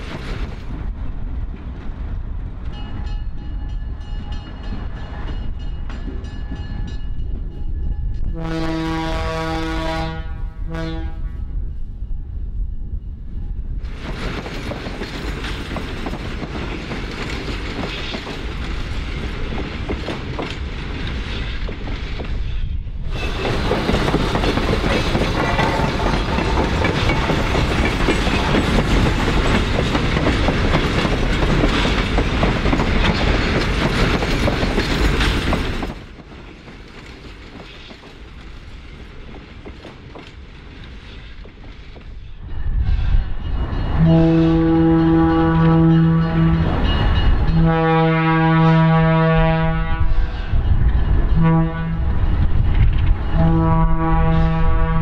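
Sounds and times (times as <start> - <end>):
train wheels clattering on rails: 0.0 - 8.3, 13.8 - 48.0, 50.1 - 54.0
locomotive air horn: 8.3 - 11.5, 25.4 - 26.0, 44.0 - 46.8, 47.5 - 50.3, 51.4 - 52.1, 53.4 - 55.0.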